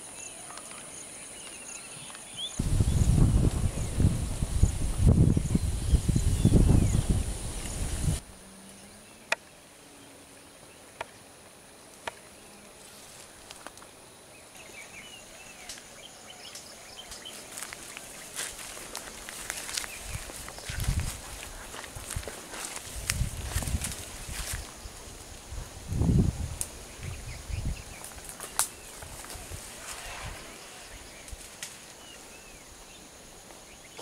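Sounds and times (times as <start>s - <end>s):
birds chirping: 0.0s - 11.3s, 14.2s - 22.2s
high insect drone: 0.0s - 34.0s
footsteps on a scrub path: 17.1s - 24.8s.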